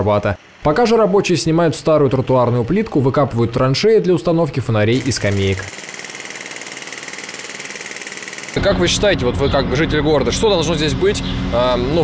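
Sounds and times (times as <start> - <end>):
jackhammer hammering: 4.8 - 9.0.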